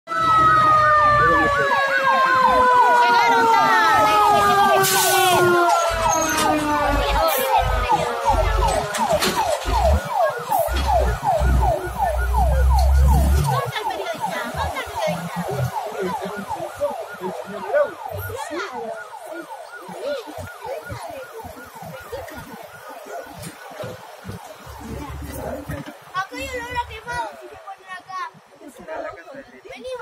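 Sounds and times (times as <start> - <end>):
siren yelping: 0.1 - 25.7
steady siren tone: 0.1 - 26.9.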